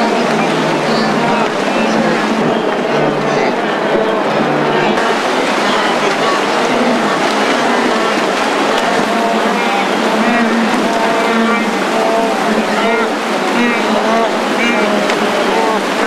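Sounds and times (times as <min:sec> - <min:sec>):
animals grunting: 0:00.0 - 0:16.0
water rushing and splashing: 0:00.0 - 0:16.0.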